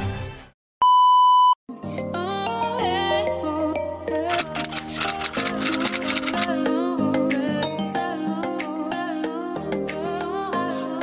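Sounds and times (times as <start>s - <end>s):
music: 0.0s - 0.6s, 1.7s - 11.0s
high electronic beep: 0.8s - 1.6s.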